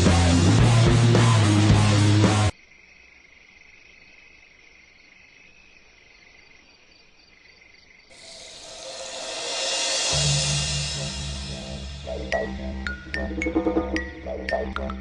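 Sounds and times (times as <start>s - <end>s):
loud rock music: 0.0s - 2.5s, 8.2s - 15.0s
insect chirring: 2.5s - 10.6s.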